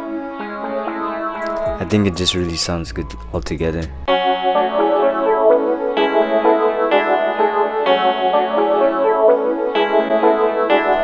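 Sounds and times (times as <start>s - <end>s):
guitar melody loop: 0.0s - 11.0s.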